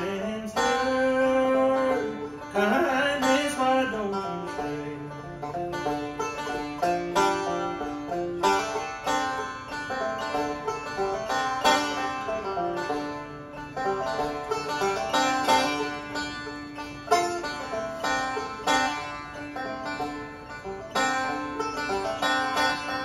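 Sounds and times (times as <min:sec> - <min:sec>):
banjo picking: 0:00.0 - 0:23.0
bluegrass string band playing: 0:00.0 - 0:23.0
resonator guitar sliding notes: 0:00.0 - 0:23.0.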